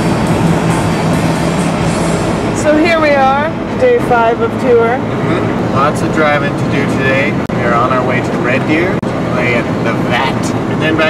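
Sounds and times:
constant low hum: 0.0s - 11.0s
engine drone: 0.0s - 11.0s
road noise: 0.0s - 11.0s.

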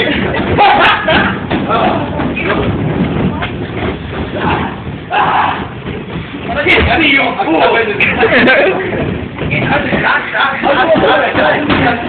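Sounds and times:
people talking: 0.0s - 3.6s, 6.5s - 12.0s
rubber balloons rubbing together: 0.0s - 12.0s.

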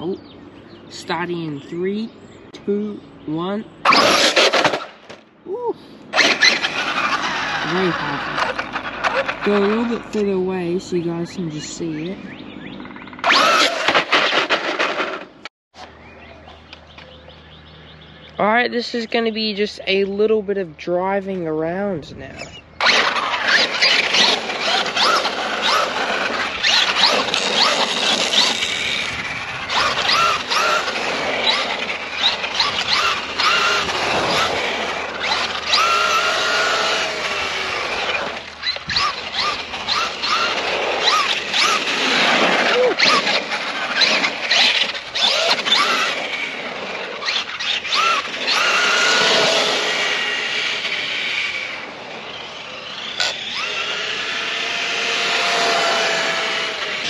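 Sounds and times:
rc truck motor whine: 3.8s - 5.2s, 6.0s - 16.2s, 22.4s - 57.0s.

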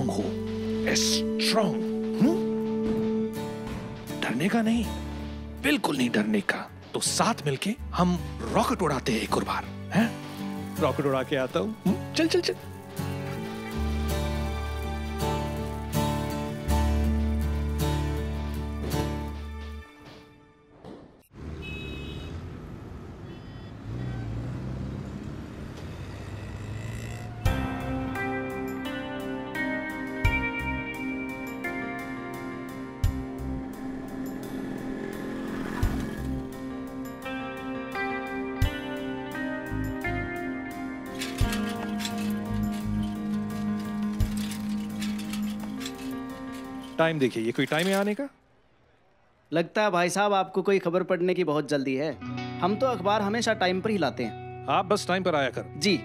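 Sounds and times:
background music: 0.0s - 21.2s, 27.2s - 48.4s, 50.0s - 56.0s
plucked guitar music: 52.1s - 56.0s.

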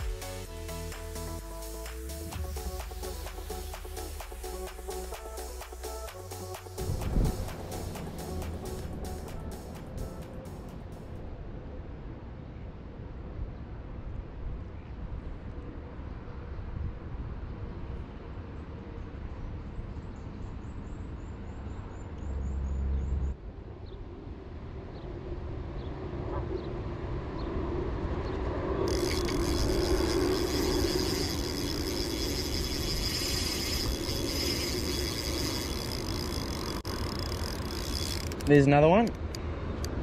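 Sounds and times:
steady high hiss: 0.0s - 11.1s
low rumble: 0.0s - 11.4s.

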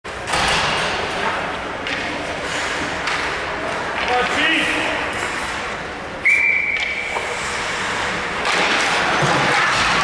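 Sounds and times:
ice rink background noise: 0.1s - 10.0s.

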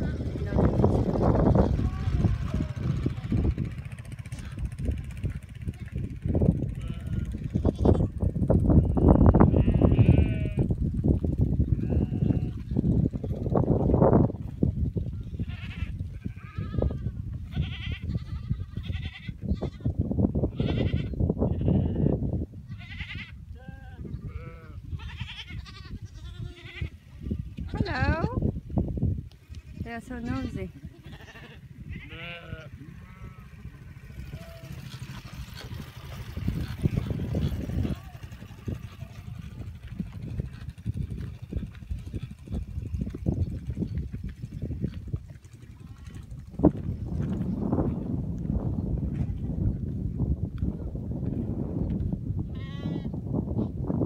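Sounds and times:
gusty low rumble: 0.0s - 54.0s
goats and sheep bleating: 1.6s - 4.8s, 6.7s - 10.7s, 11.6s - 12.8s, 15.2s - 28.3s, 29.4s - 33.6s, 34.2s - 39.6s, 52.5s - 53.1s.

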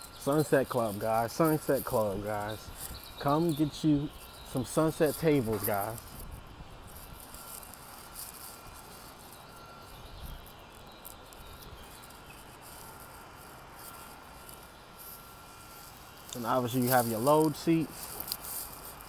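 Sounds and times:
thin high tone: 0.0s - 6.2s, 6.9s - 19.0s
faint open-air ambience: 0.0s - 19.0s.

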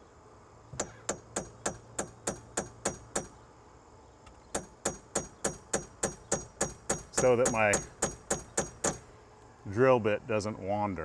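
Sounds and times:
hammer tapping metal punch: 0.8s - 3.4s, 4.5s - 9.0s.

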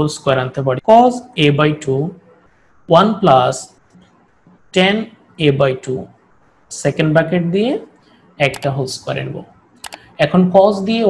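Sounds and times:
man lecturing: 0.0s - 2.2s, 2.9s - 3.7s, 4.8s - 6.1s, 6.7s - 9.5s, 10.1s - 11.0s
quick sharp clicks: 9.8s - 10.2s.

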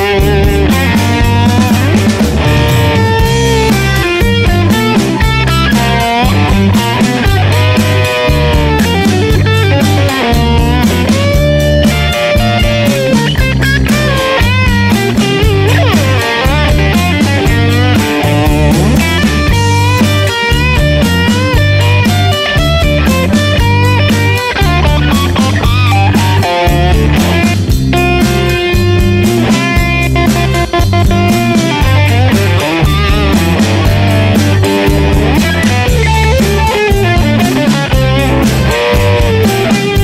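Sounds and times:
bass and drums groove: 0.0s - 40.0s
electric guitar lead: 0.0s - 40.0s.

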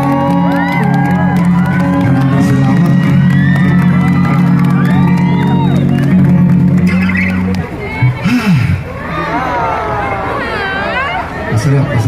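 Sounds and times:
live band playing chords: 0.0s - 9.0s
crowd whooping and cheering: 0.0s - 12.0s.

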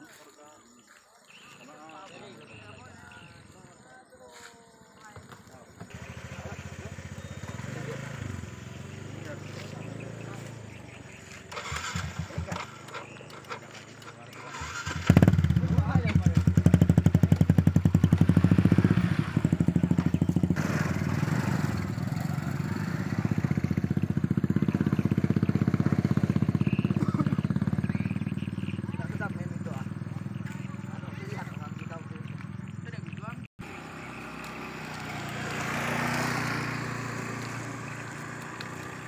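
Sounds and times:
faint voices: 0.0s - 35.9s
motorcycle engine running: 5.0s - 39.0s.

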